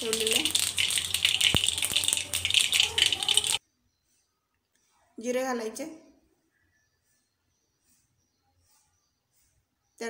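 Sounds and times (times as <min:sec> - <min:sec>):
mustard seeds crackling in hot oil: 0:00.0 - 0:03.6.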